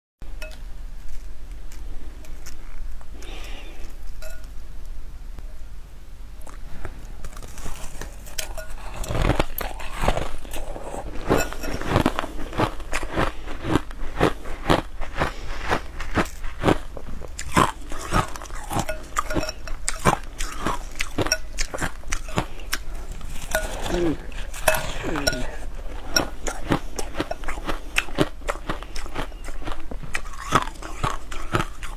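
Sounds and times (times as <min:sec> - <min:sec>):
ice crunching and chewing: 0:07.2 - 0:31.9.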